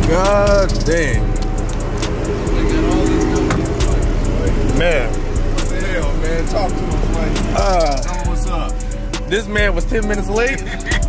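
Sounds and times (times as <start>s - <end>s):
car engine idling: 0.0s - 11.0s
music with a steady beat: 0.0s - 11.0s.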